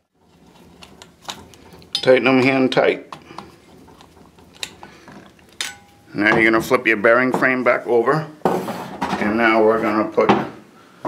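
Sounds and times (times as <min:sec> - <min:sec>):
screwdriver metallic clicks and scrapes: 0:00.2 - 0:02.2, 0:03.1 - 0:06.0.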